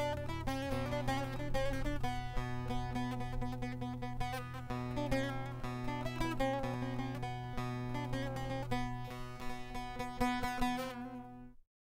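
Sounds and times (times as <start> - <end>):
steady low bass: 0.0 - 10.6
acoustic guitar plucked notes: 0.0 - 11.6.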